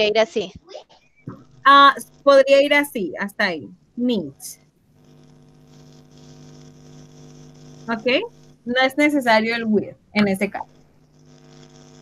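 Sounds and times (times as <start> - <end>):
steady held tones: 0.0 - 11.5
electrical hum with buzzing: 0.0 - 12.0.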